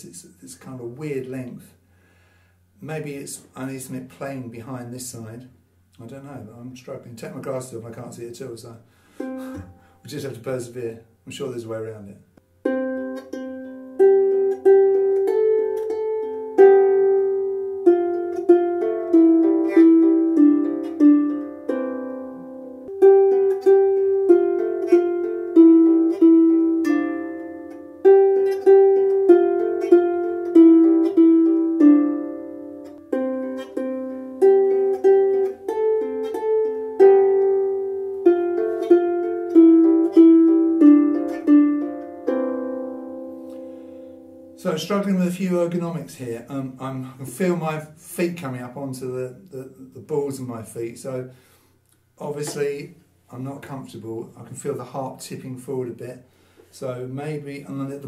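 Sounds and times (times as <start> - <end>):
harp plucked melody: 9.2 - 10.0, 12.6 - 44.6.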